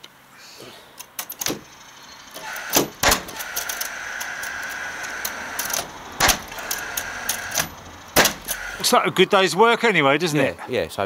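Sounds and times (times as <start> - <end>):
steady whine: 1.2 - 9.4
nail gun shots: 1.3 - 1.7, 2.4 - 3.9, 5.6 - 8.8.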